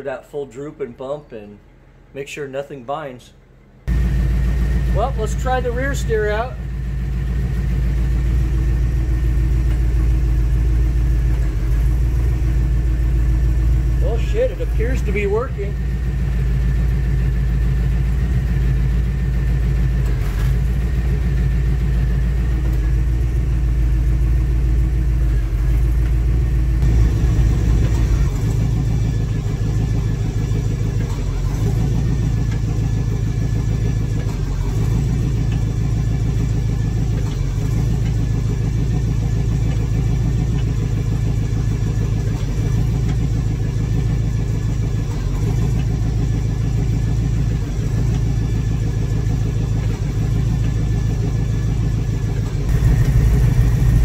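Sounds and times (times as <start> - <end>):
engine idling: 0.0 - 54.0.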